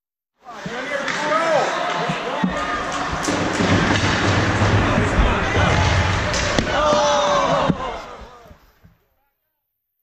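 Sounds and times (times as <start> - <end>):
hubbub of voices: 0.4 - 8.8
hockey sticks and puck knocking: 0.6 - 8.3.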